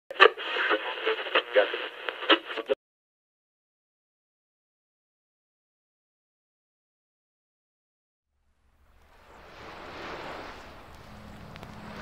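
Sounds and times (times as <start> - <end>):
tinny radio voice: 0.1 - 2.8.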